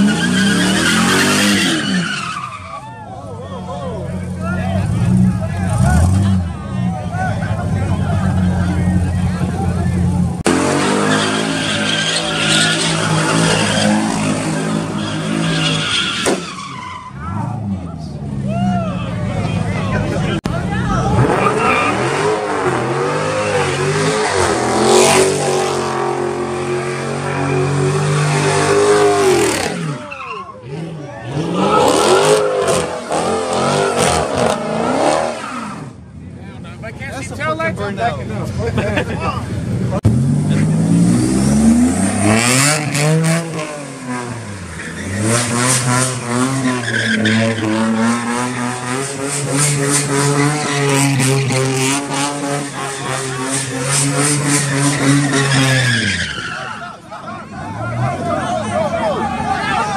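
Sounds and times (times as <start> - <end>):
tires squealing on pavement: 0.0 - 9.7, 10.5 - 17.8, 18.4 - 36.0, 40.5 - 59.9
car engine revving: 4.0 - 18.4, 19.2 - 36.1, 39.5 - 56.8.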